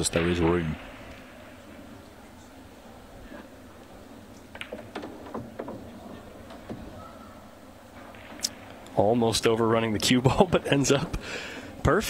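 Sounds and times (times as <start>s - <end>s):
pool balls striking each other: 4.5s - 7.0s.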